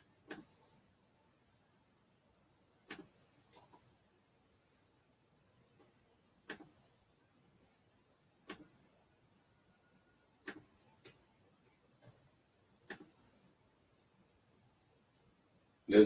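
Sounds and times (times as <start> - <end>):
quiet sharp clicks: 0.3 - 0.5, 2.9 - 3.8, 8.4 - 8.8, 10.4 - 11.2, 12.8 - 13.2.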